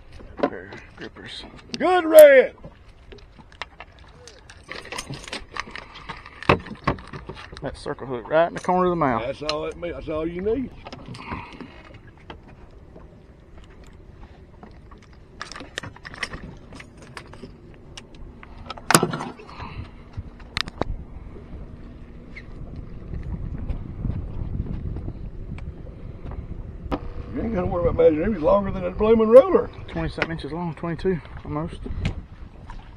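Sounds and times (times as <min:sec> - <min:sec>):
clicks and knocks of handling: 0:03.1 - 0:07.7
steady low rumble: 0:07.6 - 0:32.9.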